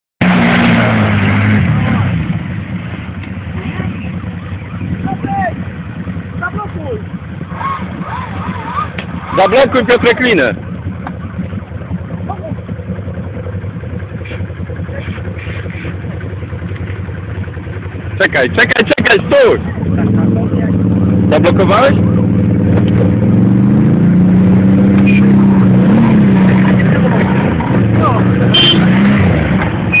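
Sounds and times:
quad engine revving: 0.2 - 2.5, 6.4 - 10.6, 18.2 - 30.0.

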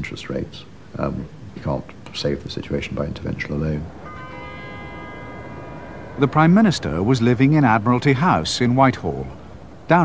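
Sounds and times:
bell ringing: 4.0 - 8.6.

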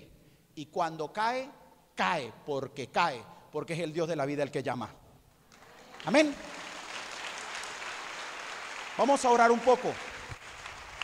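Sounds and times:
audience applause: 5.6 - 11.0.

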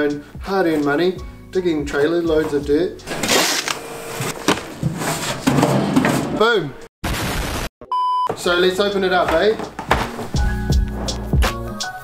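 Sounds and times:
shovel scraping metal deck: 3.0 - 6.5.

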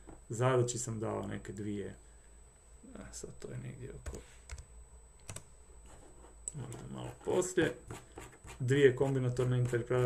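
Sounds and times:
computer keys clicking: 4.0 - 5.5.

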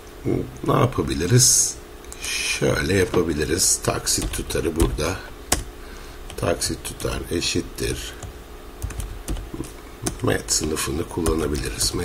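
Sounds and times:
keyboard keystrokes: 4.2 - 5.7, 8.8 - 11.8.

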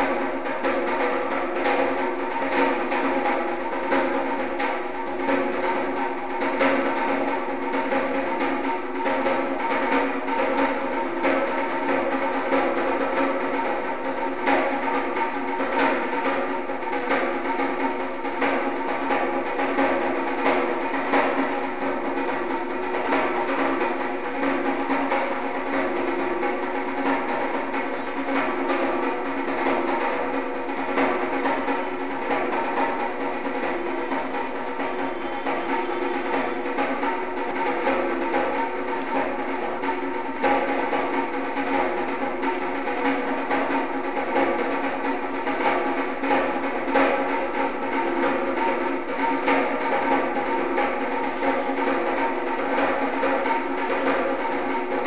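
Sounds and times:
djembe struck with drumsticks: 0.0 - 55.0.

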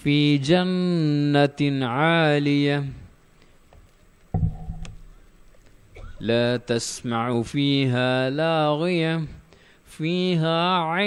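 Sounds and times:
faint background noise: 0.0 - 11.0
low thump: 4.3 - 5.2.

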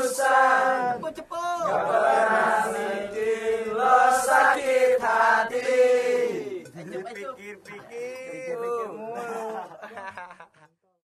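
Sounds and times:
men singing chant-like chorus: 0.0 - 1.0, 1.6 - 6.8.

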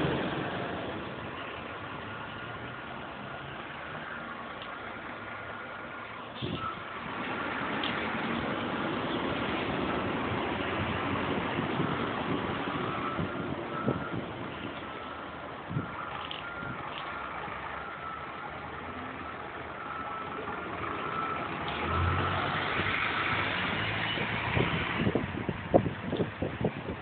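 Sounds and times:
approaching bus engine: 0.0 - 26.7
diesel bus engines running: 0.0 - 27.0.

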